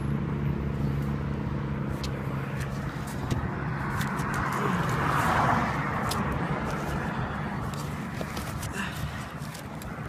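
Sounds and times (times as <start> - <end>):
car engine idling: 0.0 - 10.0
handling knocks and rustles: 7.6 - 9.9.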